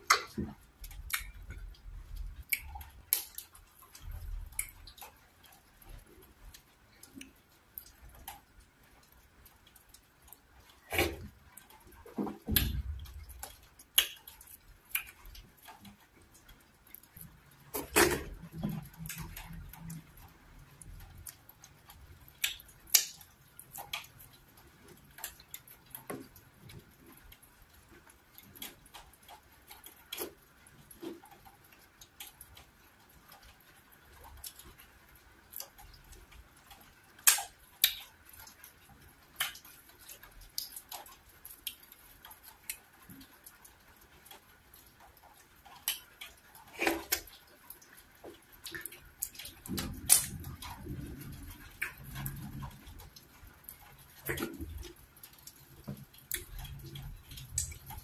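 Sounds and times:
person chewing: 0:00.0 - 0:08.3, 0:09.1 - 0:20.3, 0:29.6 - 0:31.9, 0:45.2 - 0:58.0
wet eating clicks: 0:00.0 - 0:58.0
wet mouth clicks and smacks: 0:00.1 - 0:05.0, 0:12.6 - 0:15.4, 0:22.3 - 0:24.1, 0:37.2 - 0:38.1, 0:39.4 - 0:41.8, 0:48.6 - 0:53.1, 0:56.2 - 0:58.0.

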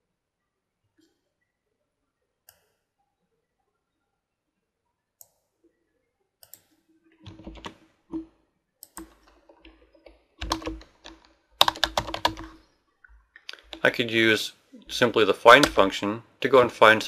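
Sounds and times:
computer keyboard typing: 0:07.2 - 0:12.6, 0:15.5 - 0:15.9.

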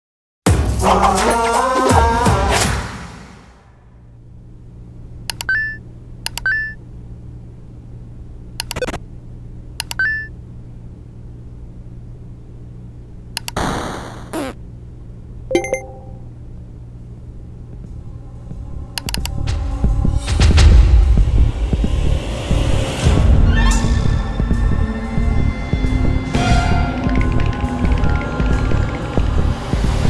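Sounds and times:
low computer hum: 0:03.8 - 0:13.6, 0:14.6 - 0:20.2
mouse clicks: 0:05.3 - 0:05.6, 0:06.3 - 0:06.6, 0:08.6 - 0:09.0, 0:09.8 - 0:10.1, 0:13.4 - 0:13.6, 0:19.0 - 0:19.4
short high beep: 0:15.5 - 0:16.2.

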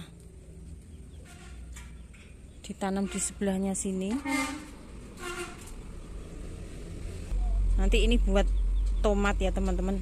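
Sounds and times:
woman speaking: 0:02.6 - 0:04.3, 0:07.8 - 0:10.0
faint low rumble: 0:05.8 - 0:10.0.

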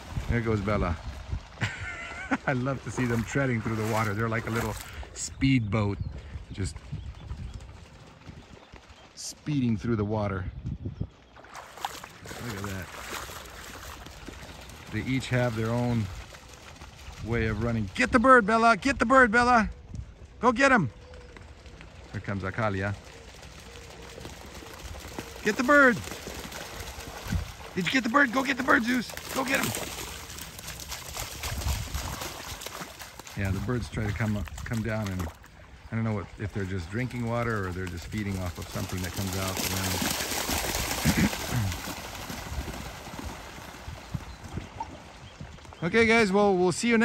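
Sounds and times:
dogs splashing through water: 0:00.0 - 0:09.8, 0:11.2 - 0:18.7, 0:20.9 - 0:47.0.

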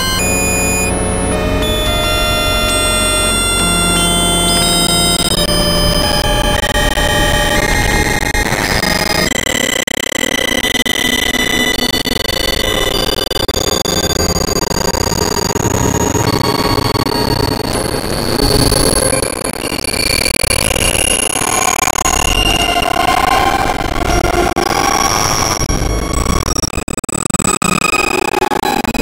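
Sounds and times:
sustained high synth tones: 0:00.0 - 0:26.3
electronic synthesizer drone: 0:00.0 - 0:26.8.

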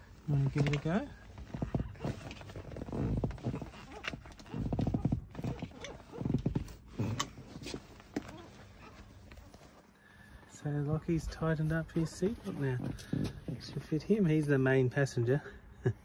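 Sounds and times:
seat belt webbing rustling: 0:00.1 - 0:09.9.

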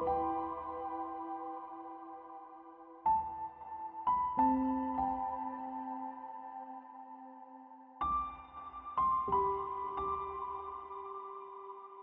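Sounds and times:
slow soft piano music: 0:00.0 - 0:12.0.

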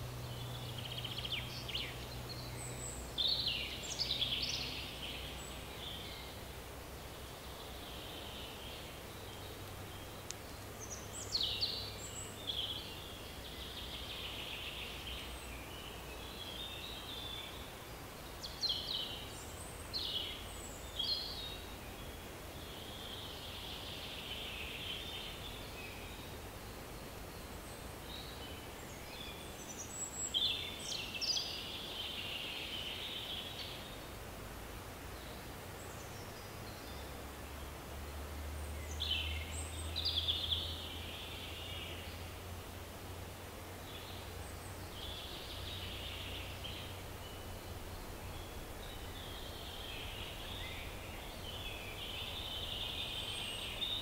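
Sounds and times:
birds chirping: 0:00.0 - 0:54.0
faint background hiss: 0:00.0 - 0:54.0.

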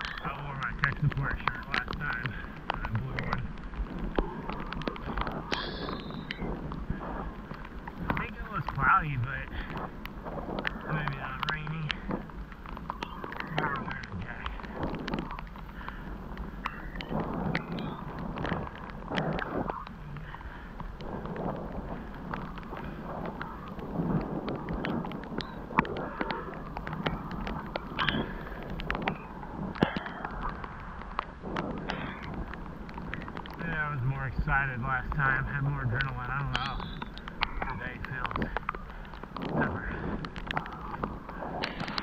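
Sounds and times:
bike clicks and knocks over bumps: 0:00.0 - 0:42.0
wind on microphone: 0:00.0 - 0:42.0
tyres rushing on wet pavement: 0:31.8 - 0:42.0.

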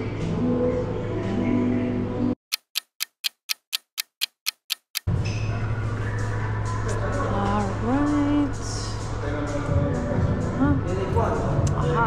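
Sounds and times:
clock ticking: 0:02.4 - 0:05.1
background music: 0:05.6 - 0:12.0.

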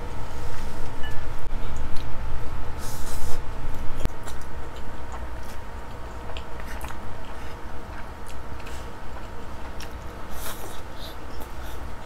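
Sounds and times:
wet chewing with mouth clicks: 0:04.0 - 0:11.9.

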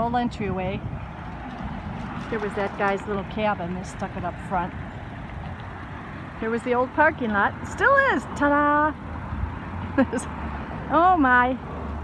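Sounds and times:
low outdoor rumble: 0:00.0 - 0:12.0
person laughing: 0:09.9 - 0:10.4.

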